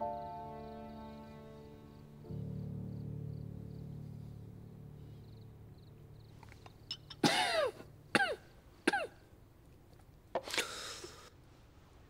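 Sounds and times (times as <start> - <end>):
low music drone: 0.0 - 8.7
man coughing: 7.2 - 9.2.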